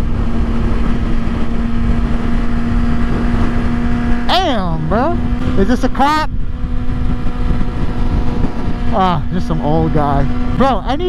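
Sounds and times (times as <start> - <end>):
motorcycle engine cruising: 0.0 - 11.0
wind noise rumble: 0.0 - 11.0.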